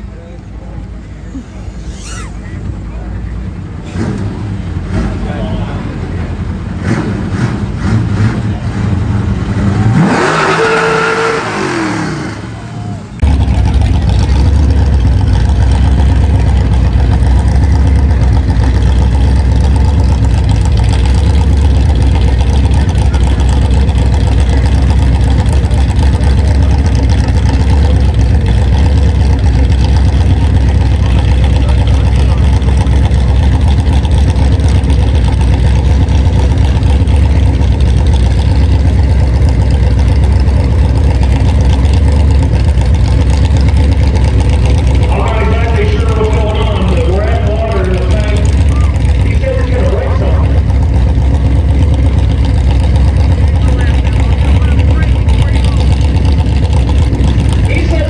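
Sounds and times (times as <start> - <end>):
truck engine falling in pitch: 0.0 - 58.0
truck engine low rumble: 0.0 - 58.0.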